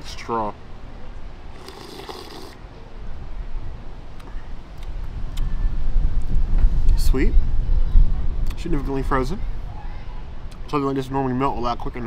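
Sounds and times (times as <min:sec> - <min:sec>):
slurp through a straw: 0:01.5 - 0:02.6
wind buffeting microphone: 0:03.2 - 0:12.0.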